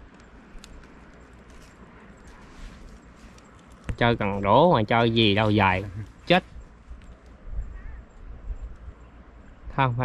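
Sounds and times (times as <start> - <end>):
wind rumble on microphone: 5.1 - 10.0.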